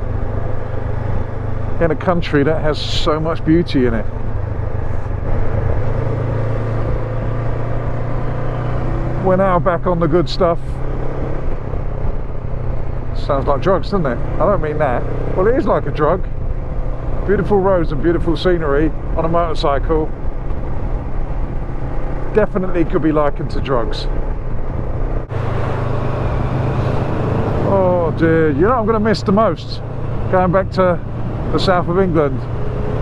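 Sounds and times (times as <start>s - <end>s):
motorcycle engine cruising: 0.0s - 33.0s
road and wind noise: 0.0s - 33.0s.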